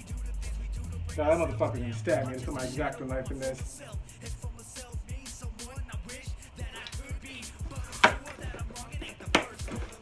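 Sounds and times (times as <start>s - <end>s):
hip hop background music: 0.0s - 10.0s
knife cutting tape and cardboard: 7.7s - 10.0s.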